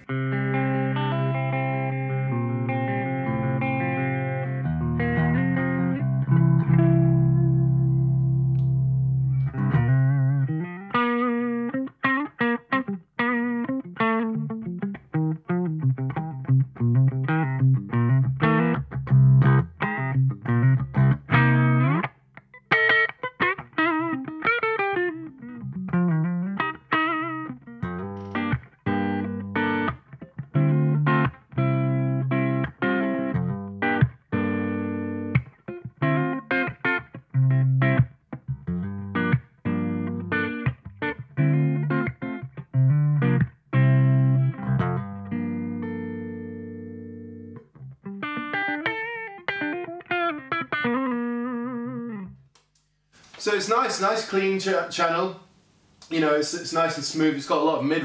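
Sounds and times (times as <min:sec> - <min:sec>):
clean electric guitar playing: 0:00.0 - 0:52.5.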